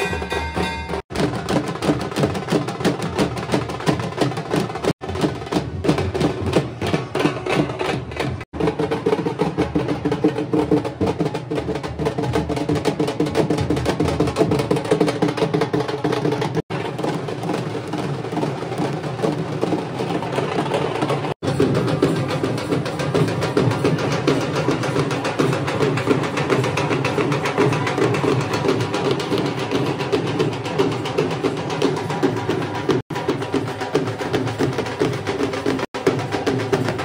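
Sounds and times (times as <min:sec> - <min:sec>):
fast dense drumming: 0:00.0 - 0:37.0.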